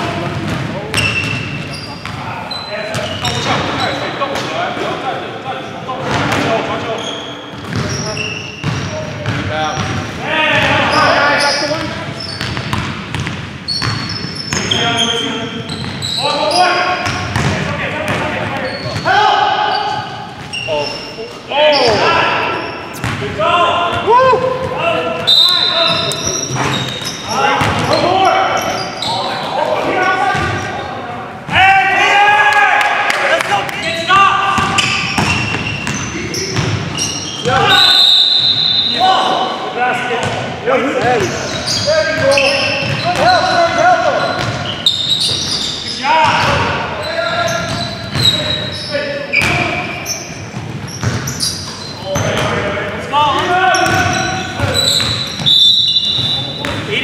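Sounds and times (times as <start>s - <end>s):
sneakers squeaking: 0.0s - 5.0s, 5.6s - 31.7s, 33.7s - 57.0s
basketball bouncing on wooden floor: 7.6s - 8.0s, 12.4s - 14.7s, 17.0s - 19.0s, 50.5s - 51.3s, 56.1s - 56.9s
players shouting: 17.8s - 50.2s, 52.0s - 57.0s.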